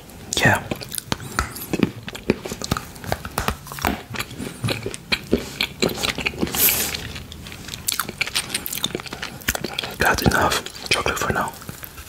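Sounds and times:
chewing chocolate: 0.2s - 12.0s.

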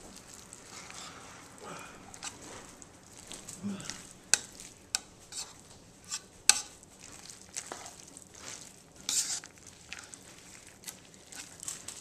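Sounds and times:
spoon stirring wet salad: 0.0s - 12.0s.

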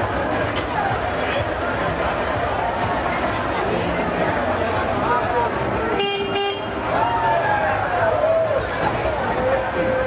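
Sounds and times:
people's voices: 0.0s - 10.0s
horn toot: 6.0s - 6.8s.

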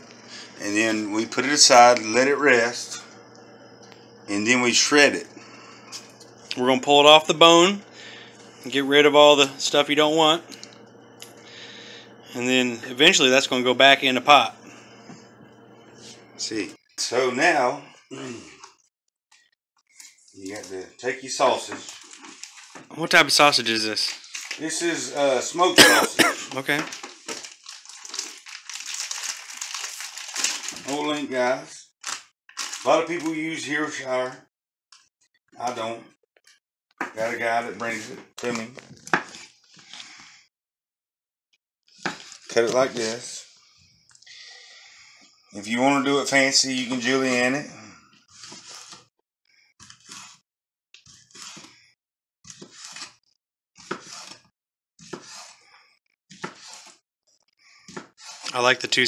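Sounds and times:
plastic bag crinkling: 21.5s - 24.7s, 26.5s - 31.2s, 32.0s - 33.5s
knife slicing sausage: 51.1s - 51.7s, 53.8s - 54.4s, 55.0s - 55.7s, 56.3s - 57.0s.

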